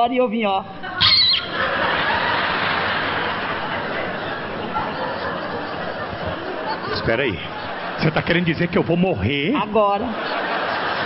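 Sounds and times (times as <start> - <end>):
audience laughter: 1.2 - 11.0
audience applause: 1.5 - 8.9.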